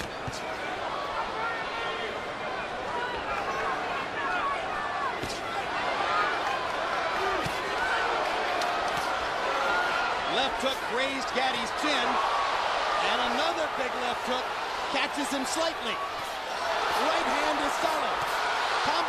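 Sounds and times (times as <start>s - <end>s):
crowd shouting: 0.0s - 19.0s.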